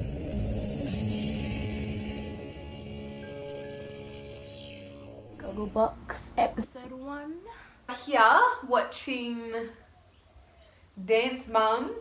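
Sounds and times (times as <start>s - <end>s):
steady low held tone: 0.0s - 7.6s
low rumbling swell with hiss: 0.0s - 8.0s.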